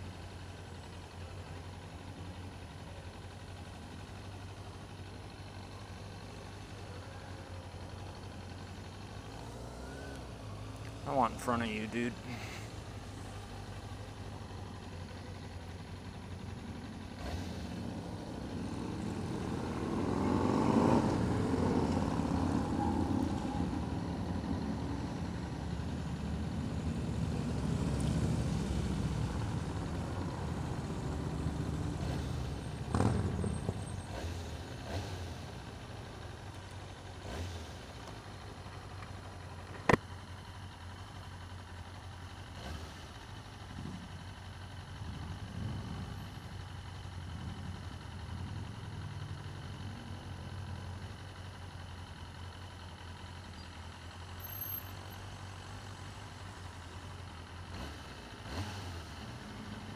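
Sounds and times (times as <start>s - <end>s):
motorcycle engine idling: 0.0s - 59.9s
passing motorcycles and cars: 0.0s - 59.9s.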